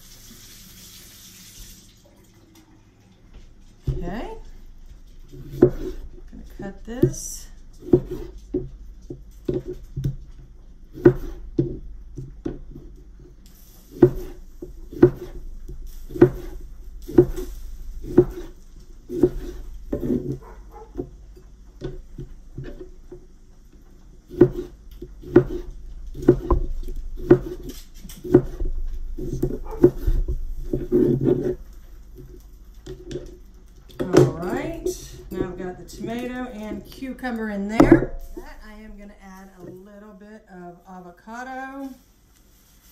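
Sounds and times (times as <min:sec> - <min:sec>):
knife striking cutting board: 0:05.4 - 0:06.0, 0:11.0 - 0:11.8, 0:13.9 - 0:15.4, 0:16.1 - 0:21.1, 0:24.3 - 0:31.6.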